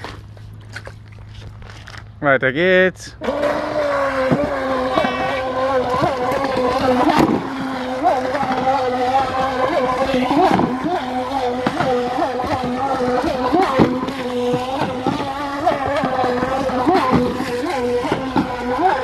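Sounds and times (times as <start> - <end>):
water rushing: 2.7 - 19.0
electric motor whining: 3.2 - 19.0.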